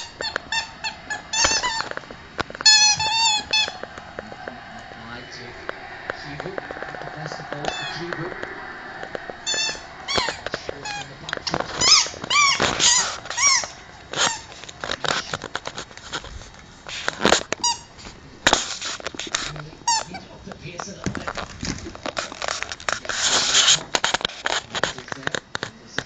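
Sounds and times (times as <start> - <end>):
dogs squeaking toy: 0.0 - 2.0, 2.6 - 3.8, 9.5 - 11.1, 11.8 - 14.6, 17.6 - 17.9.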